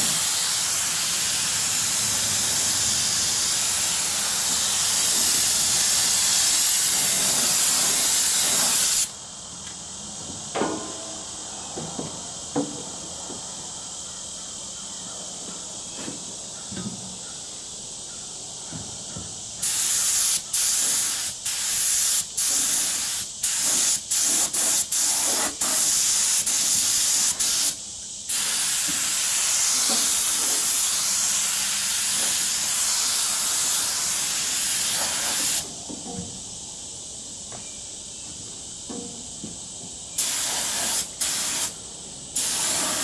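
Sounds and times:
spray gun hissing: 0.0 - 9.2, 19.6 - 35.7, 40.1 - 43.0.

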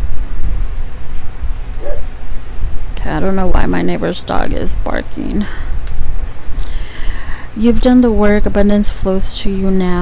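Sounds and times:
dog barking faintly: 1.8 - 2.1.

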